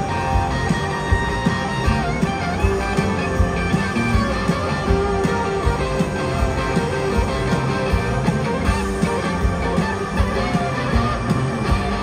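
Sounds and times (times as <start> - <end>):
rock band playing: 0.0 - 12.0
steady drum beat: 0.0 - 12.0.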